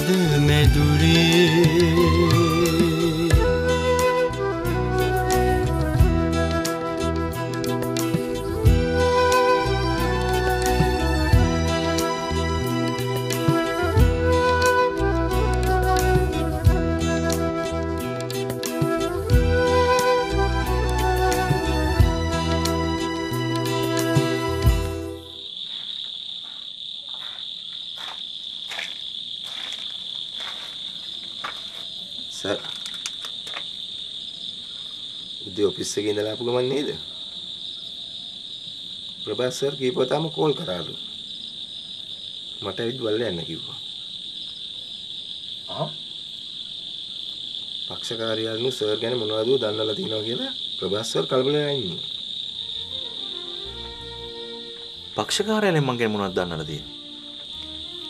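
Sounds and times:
soft background music: 0.0 - 25.4, 52.7 - 58.0
crickets chirring: 0.0 - 58.0.

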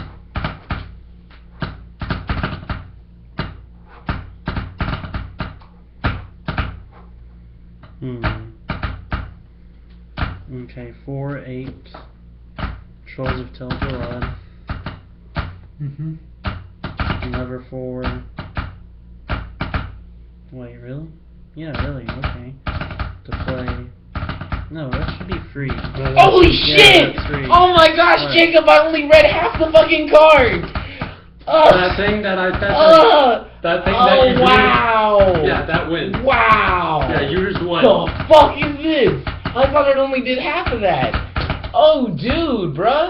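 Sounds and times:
low electrical hum: 0.0 - 43.0.

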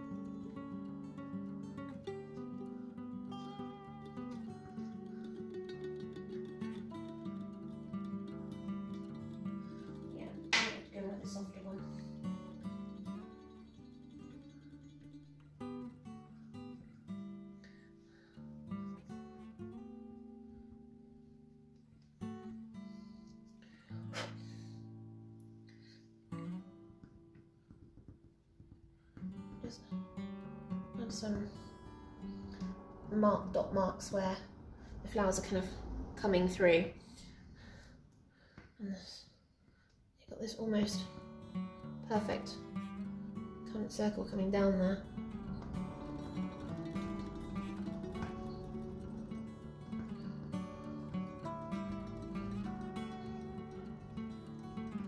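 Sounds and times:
acoustic guitar music: 0.0 - 36.6, 40.6 - 55.0.

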